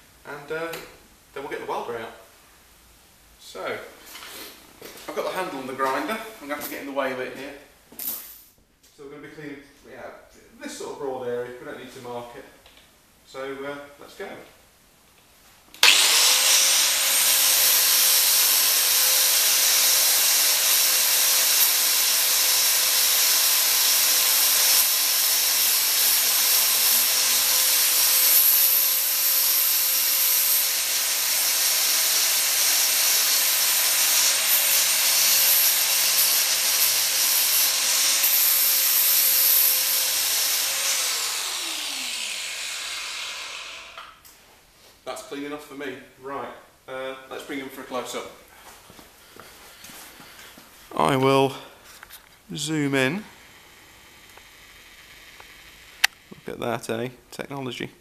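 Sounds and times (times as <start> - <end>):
angle grinder sanding metal: 15.8 - 44.1
grinder disc spinning down: 15.8 - 44.2, 53.1 - 56.6.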